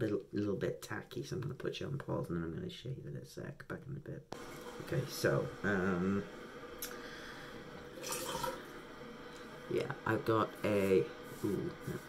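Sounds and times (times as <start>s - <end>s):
tap water running into sink: 7.8s - 8.7s.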